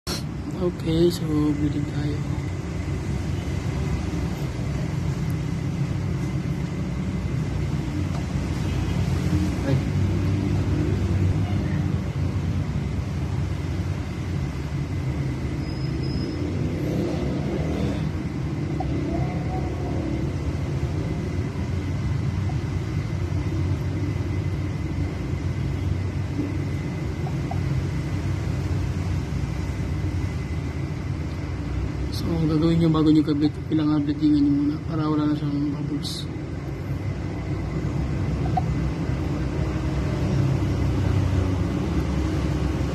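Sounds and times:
steady low rumble: 0.3s - 15.6s, 16.5s - 42.9s.

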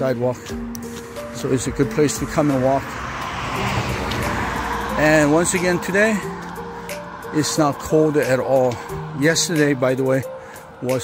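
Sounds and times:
car driving by: 0.9s - 10.8s.

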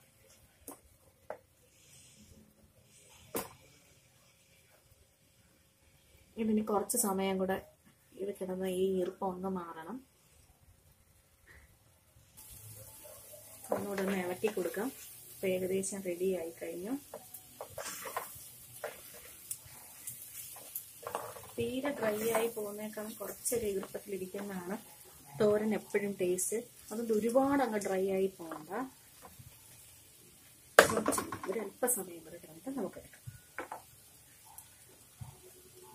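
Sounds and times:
faint steady hiss: 0.0s - 35.9s
wooden spatula stirring in pot: 12.4s - 29.8s.

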